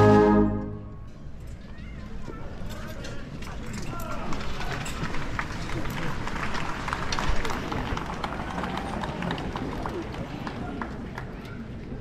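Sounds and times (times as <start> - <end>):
murmur of crowd voices: 0.0 - 12.0.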